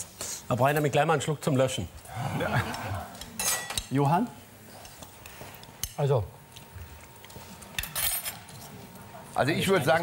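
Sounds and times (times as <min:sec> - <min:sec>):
cutlery clinking on plates: 0:03.3 - 0:03.9, 0:07.7 - 0:08.7.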